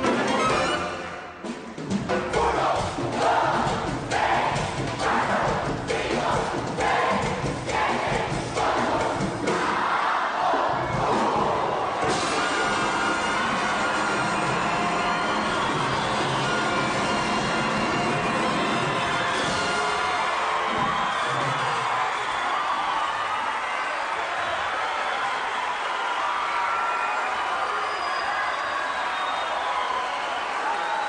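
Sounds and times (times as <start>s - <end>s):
orchestra playing mambo: 0.0s - 9.8s, 12.0s - 20.4s
audience cheering and shouting: 2.2s - 31.0s.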